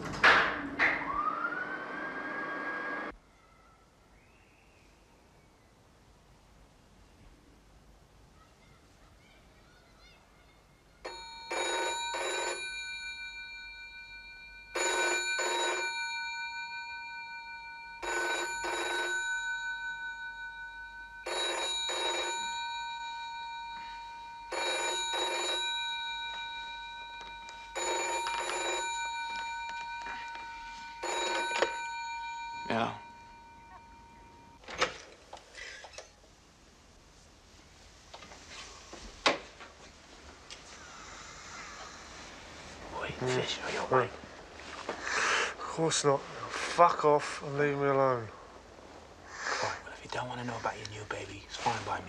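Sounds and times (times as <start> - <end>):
telephone bell double ringing: 11.1 - 34.7.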